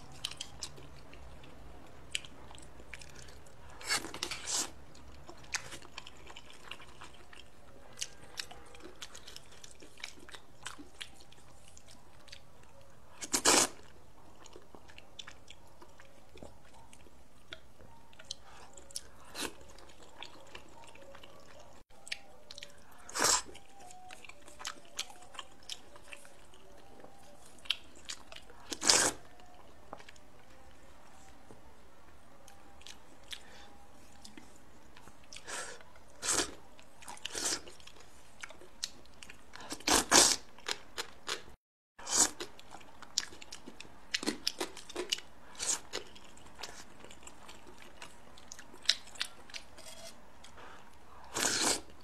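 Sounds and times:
soft chewing: 0:00.0 - 0:52.0
slurping noodles: 0:51.3 - 0:51.9.

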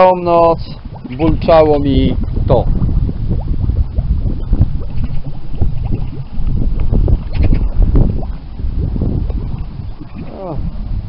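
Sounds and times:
water bubbling and gurgling: 0:00.0 - 0:11.0.

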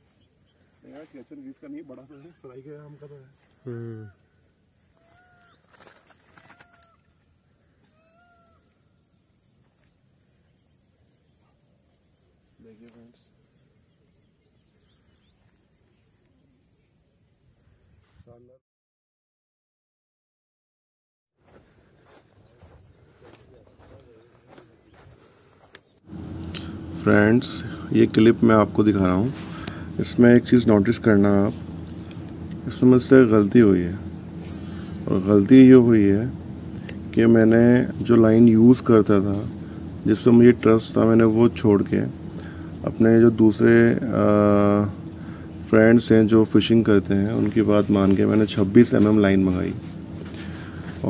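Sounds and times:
insects chirring: 0:00.0 - 0:18.6, 0:21.4 - 0:51.0
bird calls: 0:05.0 - 0:08.8
low hum: 0:26.1 - 0:51.0
person speaking: 0:26.2 - 0:51.0.

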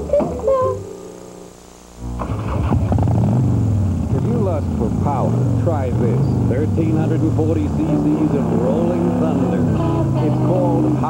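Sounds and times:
motorcycle engine running: 0:02.0 - 0:11.0.

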